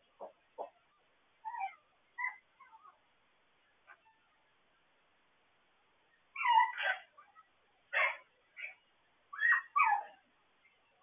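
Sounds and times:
puppy whimpering: 1.4 - 3.0, 6.4 - 7.1, 9.4 - 10.2.

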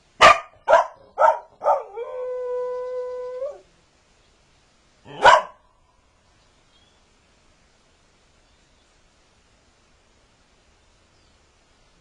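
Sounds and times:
dog barking: 0.2 - 1.9, 5.1 - 5.6.

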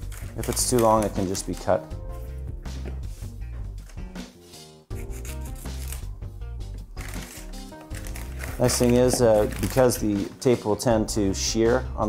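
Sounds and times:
background music: 0.0 - 12.0
scissors cutting tape: 5.0 - 6.1, 7.0 - 9.9.

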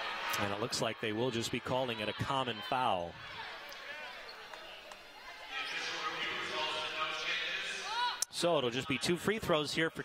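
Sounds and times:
crowd chatter in a gym: 0.0 - 10.0
sneakers squeaking on court: 5.4 - 6.2.

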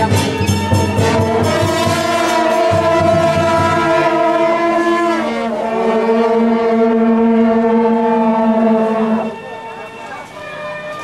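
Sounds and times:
loud steady horn-like tone: 0.0 - 11.0.

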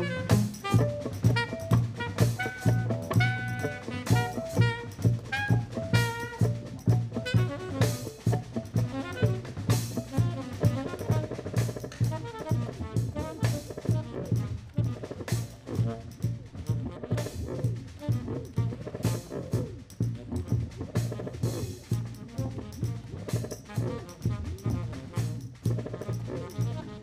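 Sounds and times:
drum kit: 0.0 - 27.0
electric guitar: 0.0 - 27.0
tenor saxophone: 0.0 - 27.0
upright bass: 0.0 - 27.0.

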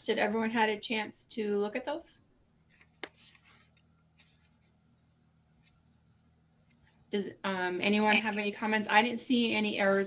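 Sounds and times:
faint rustling: 2.6 - 7.2.

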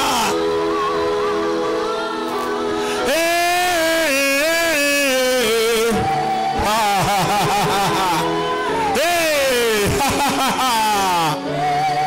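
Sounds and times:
man singing into microphone: 0.0 - 0.5, 3.0 - 12.0.

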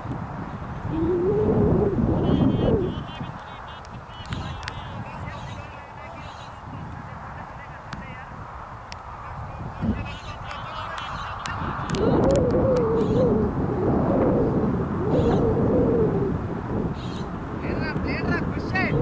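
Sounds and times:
birds calling: 2.2 - 6.7, 9.8 - 12.2, 13.0 - 13.4, 15.1 - 15.5, 16.9 - 17.4
loud wavering bird call: 12.8 - 13.4, 15.1 - 15.5.

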